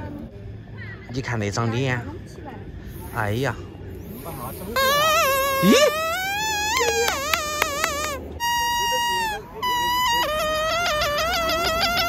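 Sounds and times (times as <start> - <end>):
seed pod whistle: 4.3 - 12.0.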